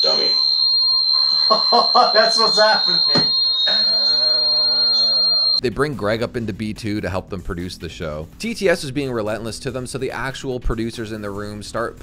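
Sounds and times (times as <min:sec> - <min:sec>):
high-pitched feedback whine: 0:00.0 - 0:05.6.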